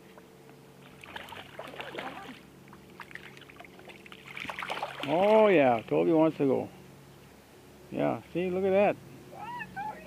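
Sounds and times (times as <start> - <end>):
steady low hum: 0.0 - 10.0
river water splashing: 0.1 - 7.8.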